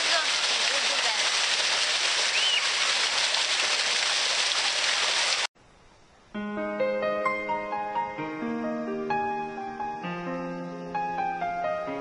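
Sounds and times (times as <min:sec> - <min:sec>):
fountain water splashing: 0:00.0 - 0:05.5.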